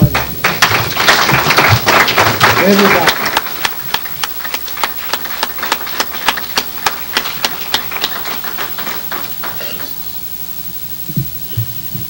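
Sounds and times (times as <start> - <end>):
audience clapping in rhythm: 0.0 - 10.0.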